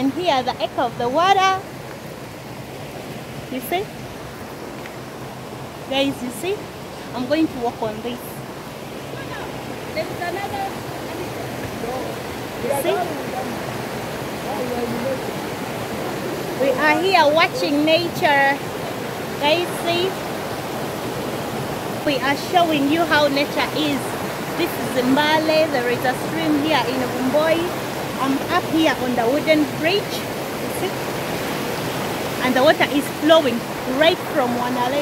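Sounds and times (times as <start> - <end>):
stream water rushing: 0.0 - 35.0.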